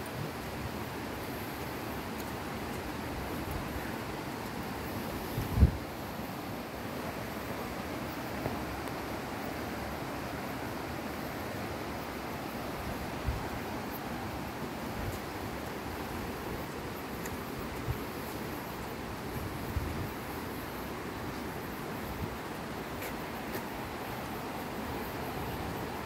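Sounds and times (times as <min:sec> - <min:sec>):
wind rushing on microphone: 0:04.9 - 0:06.1, 0:12.8 - 0:13.8, 0:18.9 - 0:20.5
low wind buffeting thumps: 0:05.2 - 0:05.9.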